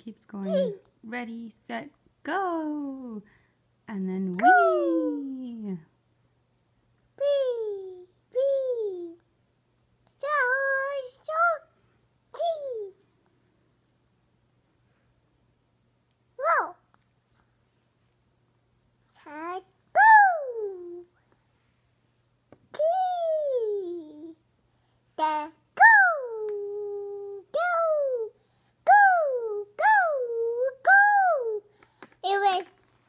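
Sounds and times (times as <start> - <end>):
toddler making falling weee calls: 4.4 - 5.2
toddler sing-song vocalizing: 4.4 - 5.5, 25.2 - 32.7.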